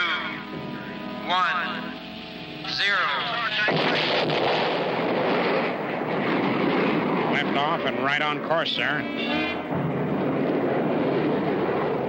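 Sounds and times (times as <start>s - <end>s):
rocket launch rushing noise: 3.5s - 8.5s.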